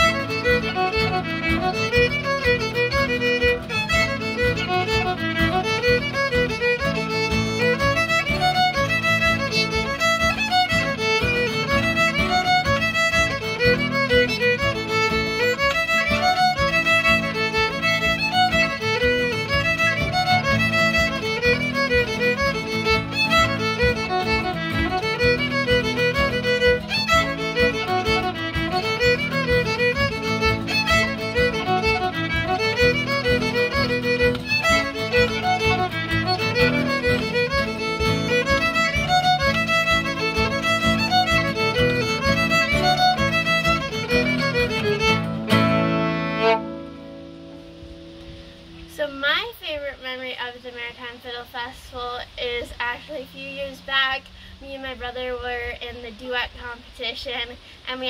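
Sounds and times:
fiddle playing lively tune: 0.0s - 50.6s
acoustic guitar chords: 0.0s - 50.9s.

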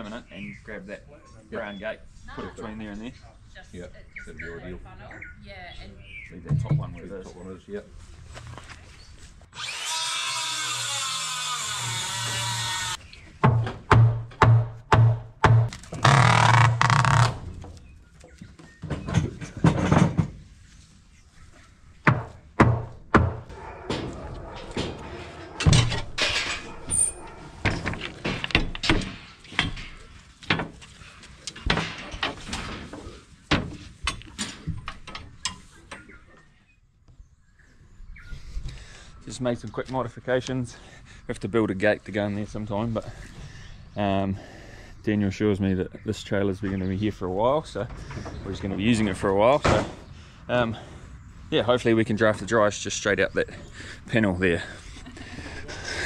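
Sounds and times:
power drill running: 9.6s - 13.0s
knocks: 13.4s - 16.2s, 22.0s - 26.1s
metal gate panels clanking: 23.7s - 30.8s.

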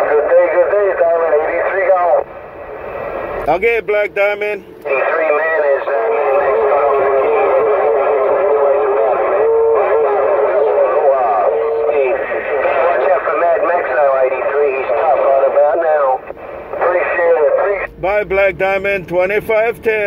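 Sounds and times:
garbled overlapping radio voices: 0.0s - 20.0s
steady radio whistle: 4.2s - 20.0s.

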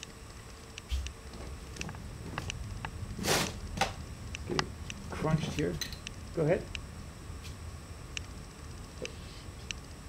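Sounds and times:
short hissing rustle: 3.2s - 3.6s.

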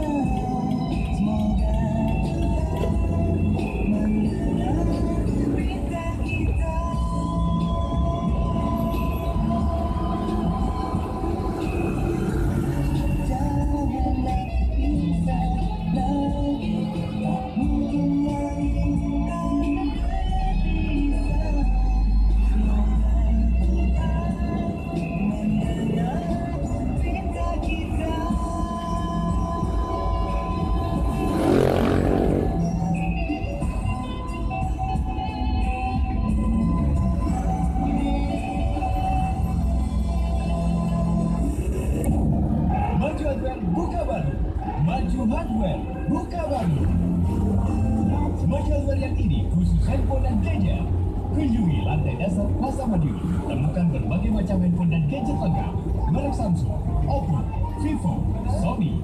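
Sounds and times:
engine rumble and tyre noise: 0.0s - 59.0s.

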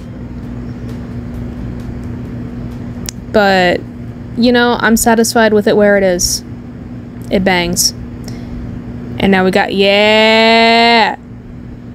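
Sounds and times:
low hum: 0.0s - 11.9s.

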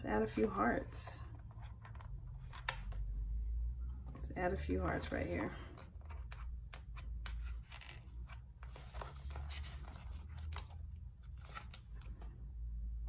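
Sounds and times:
low steady hum: 0.0s - 13.0s
paper rustling: 8.6s - 12.4s.

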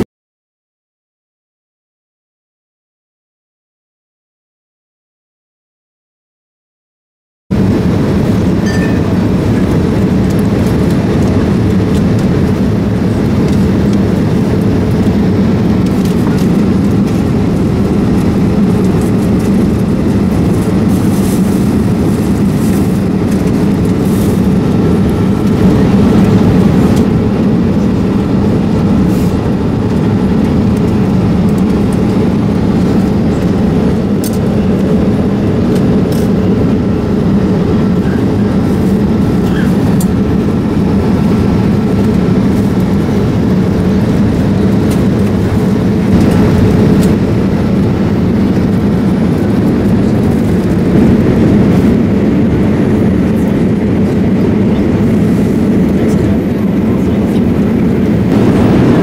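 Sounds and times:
airliner cabin engine drone: 7.5s - 59.0s.

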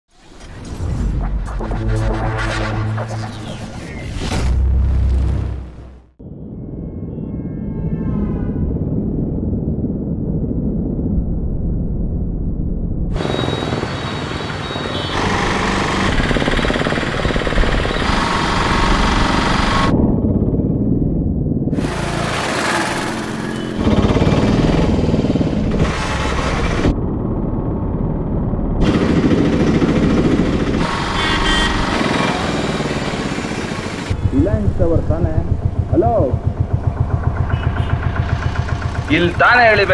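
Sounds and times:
busy street traffic: 13.2s - 19.9s, 21.8s - 28.0s, 28.8s - 39.9s
motorcycle engines: 13.2s - 19.9s, 21.8s - 27.2s, 28.8s - 39.9s
auto-rickshaw engines: 13.2s - 20.0s, 21.8s - 39.9s.

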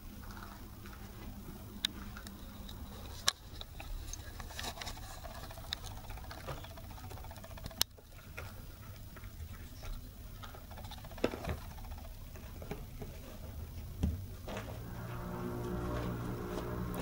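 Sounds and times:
puppies chewing metal brush: 0.1s - 13.8s.

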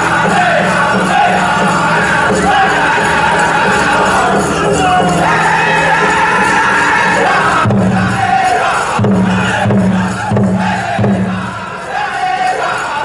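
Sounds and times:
big bass drum beats: 0.0s - 11.8s
crowd noise and shouts: 0.0s - 13.0s
drum group singing: 0.0s - 13.0s.

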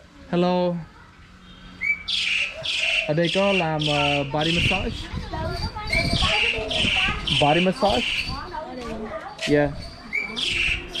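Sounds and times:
small bird chirping: 1.8s - 8.6s, 9.2s - 11.0s.

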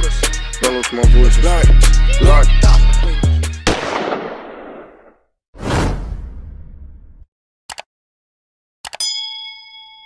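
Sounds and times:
hip-hop music: 0.0s - 3.7s.

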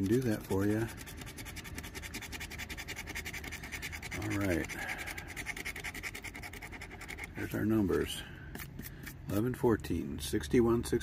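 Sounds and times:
scratching lottery ticket coating: 0.0s - 9.2s.

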